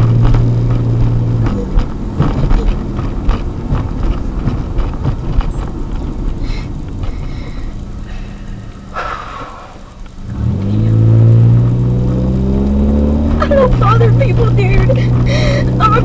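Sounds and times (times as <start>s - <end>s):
knocks and rattles: 0.0s - 7.2s
road rumble: 0.0s - 16.0s
steady low hum: 0.0s - 16.0s.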